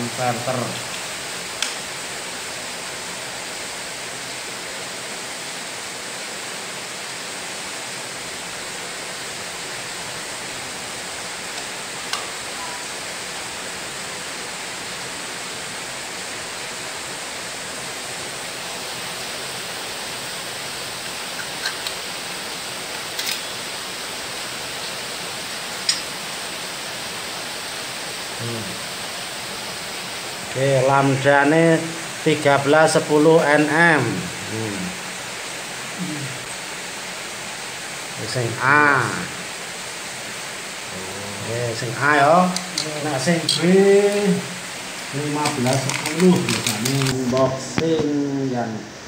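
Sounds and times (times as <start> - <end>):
steady hiss: 0.0 - 49.0.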